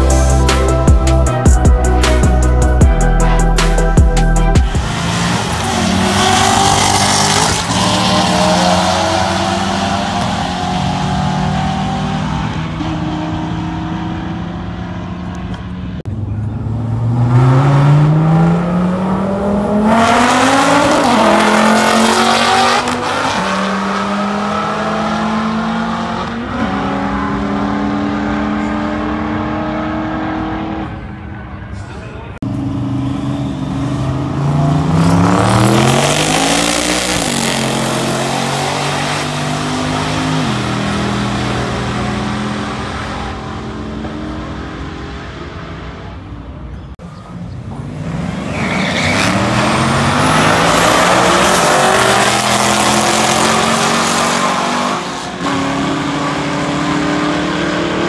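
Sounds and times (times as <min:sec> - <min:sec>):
race car engines at full throttle: 0:00.0 - 0:58.0.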